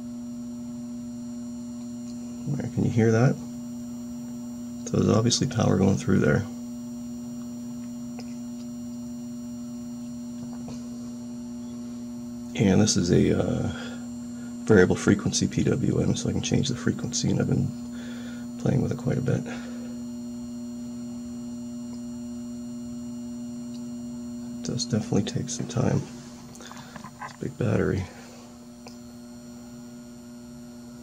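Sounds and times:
circuit humming: 0.0 - 31.0
faint high whine: 0.0 - 31.0.

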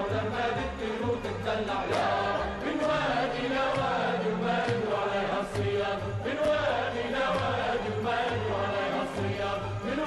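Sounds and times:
men singing together: 0.0 - 10.0.

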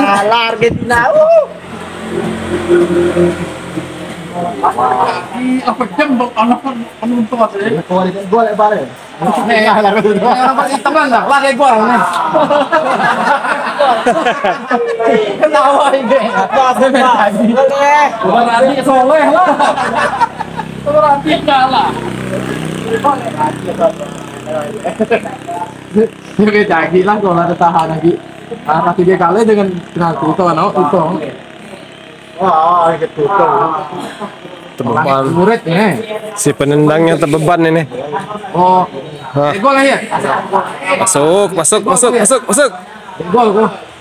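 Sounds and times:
vehicle engine running: 0.0 - 14.3, 15.4 - 44.0
men's voices: 0.0 - 44.0.

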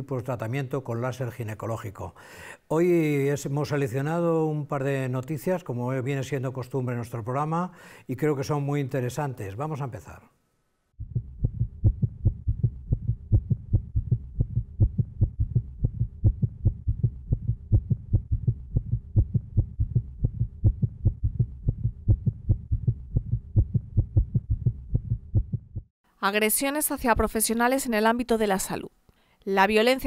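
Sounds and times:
ultrasound doppler heartbeat: 11.0 - 25.9.

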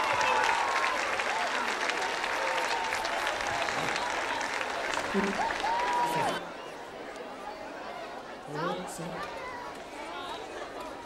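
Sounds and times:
large audience applauding: 0.0 - 6.5.

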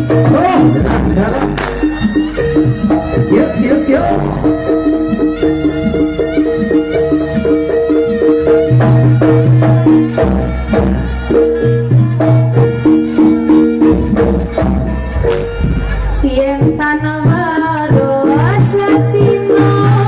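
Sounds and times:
drum strokes: 0.0 - 19.2
pitched metal notes: 0.0 - 20.0.

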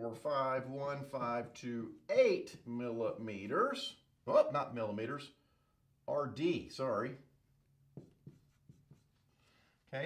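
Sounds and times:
marker writing on whiteboard: 7.8 - 9.4.

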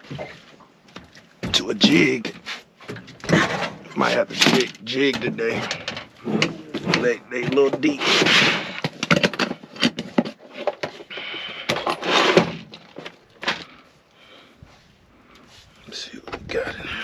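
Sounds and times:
lures and tools rattling: 2.9 - 13.8
plastic box clicks and clatters: 8.8 - 11.0.

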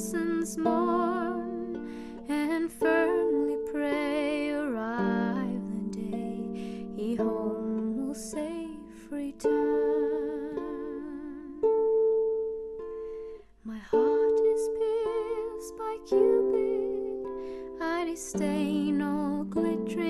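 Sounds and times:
soprano singing with vibrato: 0.0 - 12.4, 13.2 - 20.0
harp plucked notes and chords: 0.0 - 20.0.

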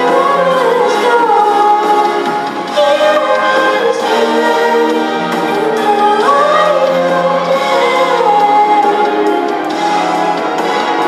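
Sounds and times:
girl singing into a microphone: 0.0 - 9.4
instrumental backing track: 0.0 - 11.0.

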